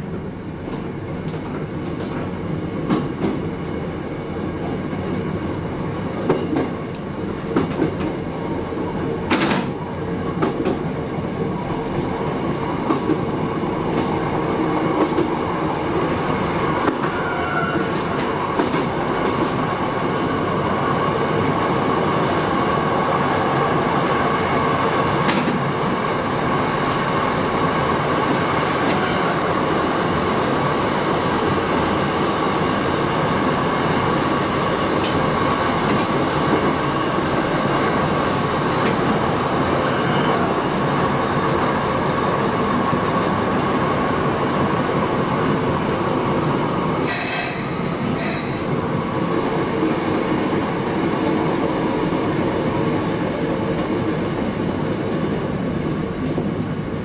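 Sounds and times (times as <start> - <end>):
train rail running noise: 0.0 - 57.0
electric train whine: 39.2 - 57.0.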